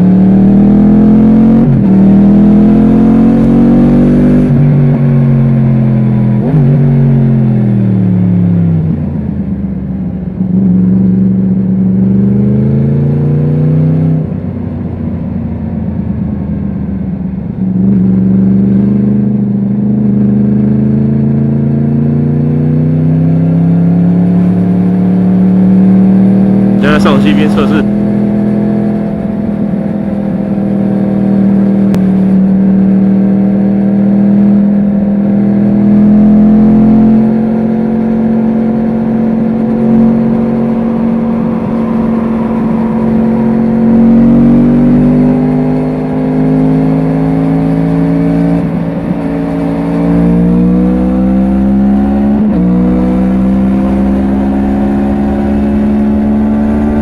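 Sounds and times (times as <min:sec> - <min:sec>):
motorcycle engine revving: 0:00.0 - 0:08.8, 0:17.8 - 0:57.0.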